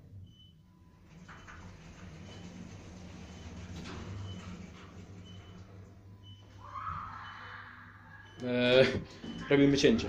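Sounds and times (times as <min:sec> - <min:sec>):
lift car humming: 0:01.0 - 0:06.4
distant wail: 0:06.6 - 0:08.4.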